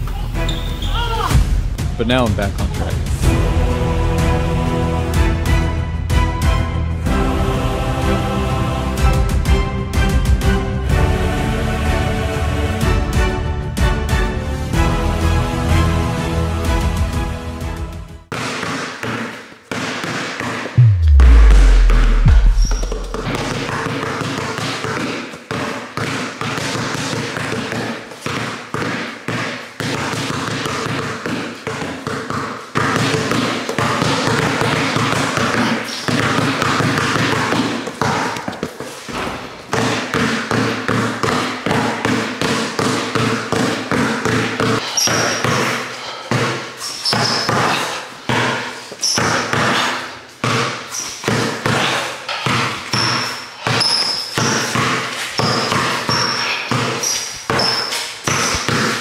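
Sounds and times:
basketballs bouncing on concrete: 18.3s - 59.0s.

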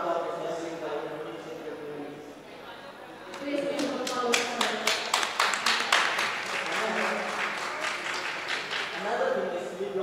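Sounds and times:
people clapping: 3.3s - 9.2s.

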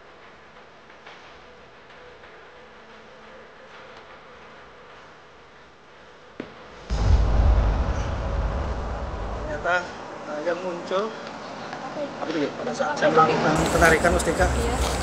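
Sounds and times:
loud low rumbling: 6.8s - 10.3s.

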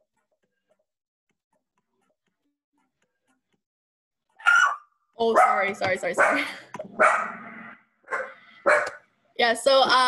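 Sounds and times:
dog barking: 4.4s - 7.4s, 8.0s - 9.0s.

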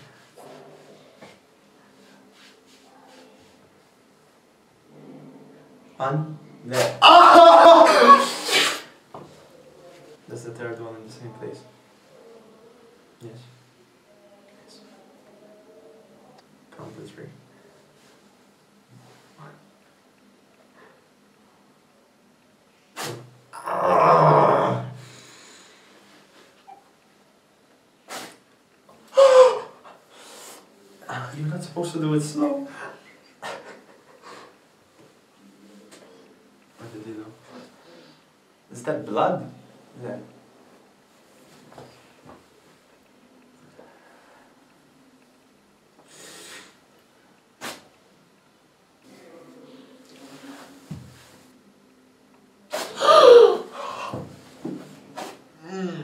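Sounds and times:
man yelling: 7.0s - 8.4s
person crying out in pain: 7.0s - 8.5s, 29.1s - 29.8s, 52.9s - 54.1s
person gasping: 29.1s - 30.3s, 52.9s - 54.3s
man gasping with cry: 53.0s - 54.2s.

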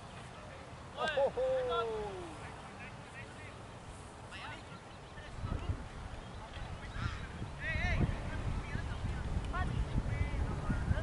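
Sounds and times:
bird calls: 6.1s - 7.8s.

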